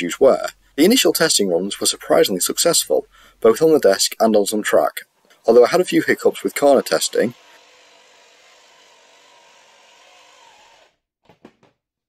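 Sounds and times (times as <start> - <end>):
model locomotive motor whirring: 5.4 - 11.0.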